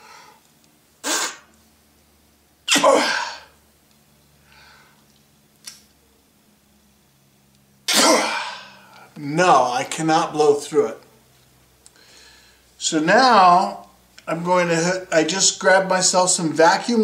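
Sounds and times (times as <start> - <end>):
man blowing puffs by mouth: 1.0 - 1.6.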